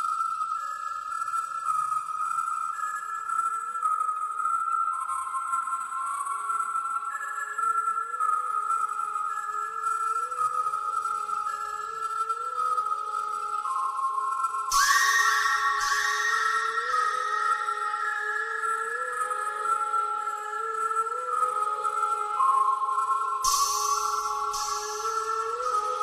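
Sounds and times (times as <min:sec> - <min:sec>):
instrumental music: 0:08.4 - 0:26.0.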